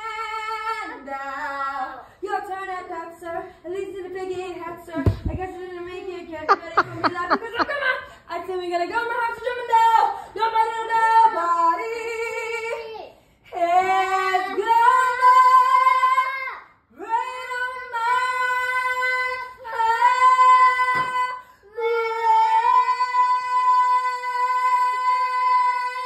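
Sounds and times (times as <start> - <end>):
girl singing unaccompanied: 0.0 - 7.6, 8.3 - 26.0.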